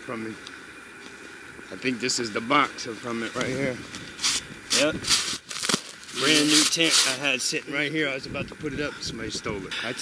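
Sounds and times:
crunching and rustling snow debris: 0:03.3 - 0:07.6.

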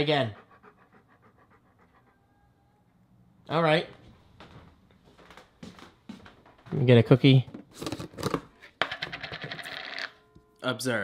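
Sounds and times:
dog panting faintly: 0:00.0 - 0:02.8.

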